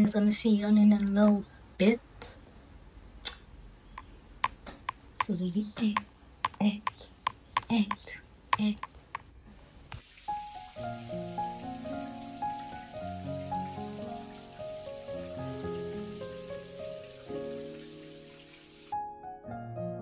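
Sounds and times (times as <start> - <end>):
shower running: 9.9 - 19.0
soft piano music: 10.2 - 20.0.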